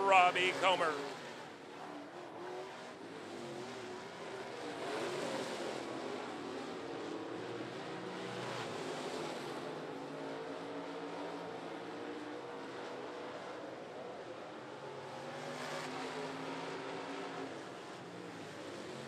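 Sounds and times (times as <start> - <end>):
race car engines racing: 0.0 - 19.0.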